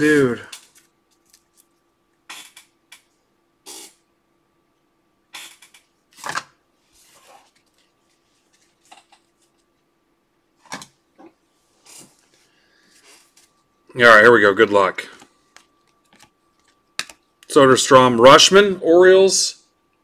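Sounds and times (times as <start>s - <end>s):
faint steady hum: 0.0s - 20.0s.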